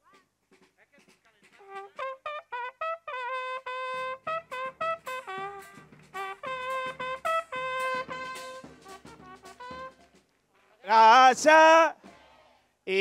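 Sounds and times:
trumpets playing brass notes: 1.5s - 10.2s, 10.9s - 12.0s
drum hits: 3.9s - 10.2s.

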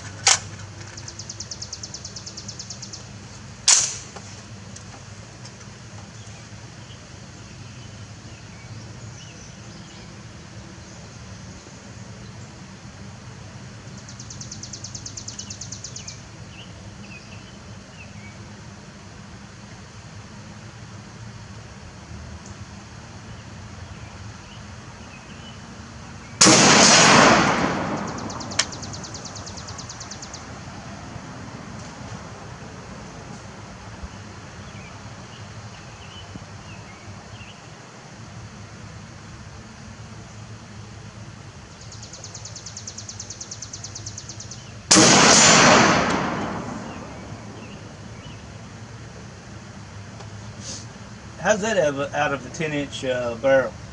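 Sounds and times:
birds chirping faintly: 0.0s - 3.6s, 4.4s - 18.6s, 27.8s - 31.0s, 32.9s - 44.9s, 46.2s - 53.9s
insects buzzing: 0.0s - 53.9s
rifle shots with echo: 3.7s - 4.2s, 26.4s - 28.7s, 44.9s - 47.6s.

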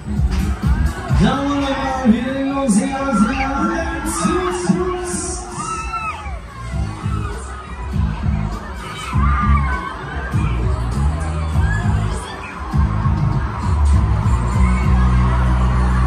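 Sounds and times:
ride music with heavy bass: 0.0s - 16.0s
riders screaming and shouting: 2.4s - 16.0s.

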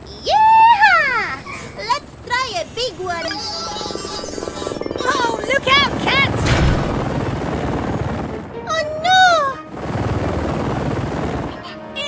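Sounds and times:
cartoon helicopter rotor whirring: 2.2s - 8.4s
sing-song character calls: 2.7s - 6.5s.

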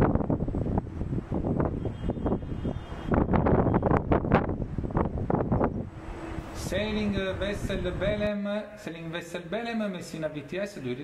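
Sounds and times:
wind buffeting microphone: 0.0s - 8.4s.

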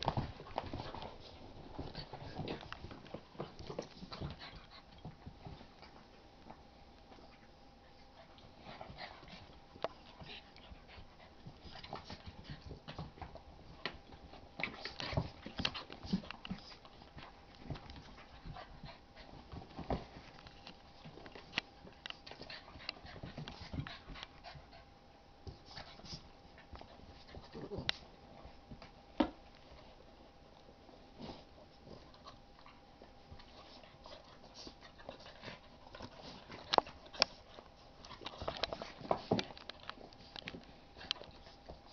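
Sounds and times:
dogs scuffling and mouthing: 0.0s - 41.9s
light clicks and rustles: 32.0s - 41.9s.

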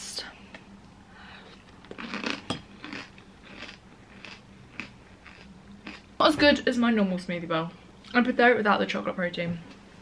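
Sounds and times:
chewing crunchy granola: 1.9s - 6.1s.

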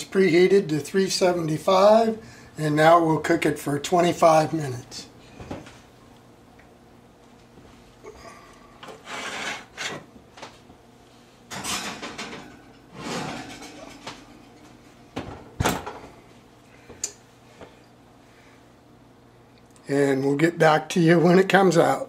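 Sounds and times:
pan scraping on oven rack: 8.8s - 10.1s, 11.5s - 14.6s.

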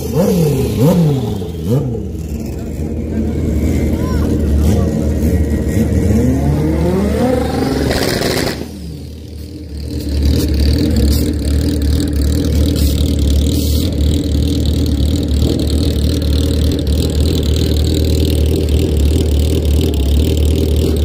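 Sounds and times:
motorcycle engine idling: 0.0s - 5.9s, 8.7s - 21.0s
motorcycle engine revving: 0.0s - 21.0s.

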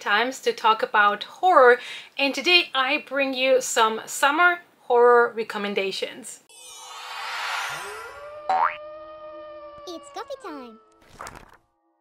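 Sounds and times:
voice: 0.0s - 6.4s, 9.9s - 10.8s
held electronic note: 6.5s - 11.0s
rising cartoon boing: 6.5s - 11.2s.

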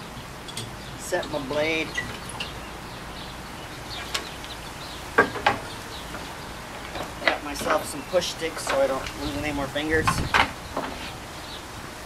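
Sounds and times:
sharp wooden knocks: 5.2s - 8.0s, 10.1s - 11.0s.

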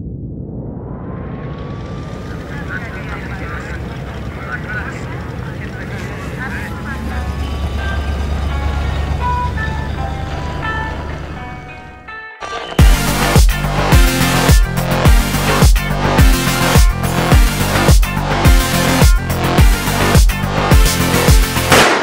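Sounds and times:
car engine running: 1.5s - 21.8s
faint voices: 2.1s - 11.4s
soft musical notes: 5.7s - 21.2s.

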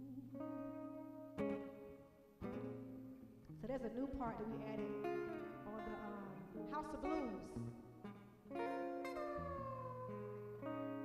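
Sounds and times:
acoustic guitar strumming: 0.0s - 11.0s
woman singing: 3.7s - 7.6s.

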